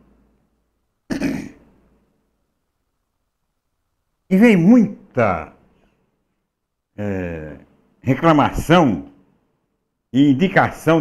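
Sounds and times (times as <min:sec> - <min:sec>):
man clearing his throat: 0:01.1 - 0:01.7.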